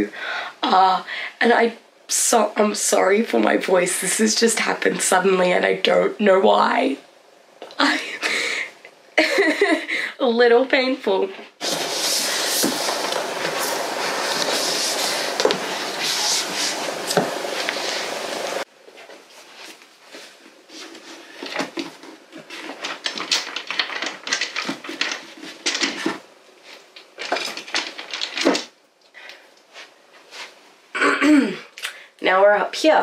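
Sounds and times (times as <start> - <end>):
books sliding onto shelves: 11.6 - 18.7
loud rustling and handling: 11.6 - 28.7.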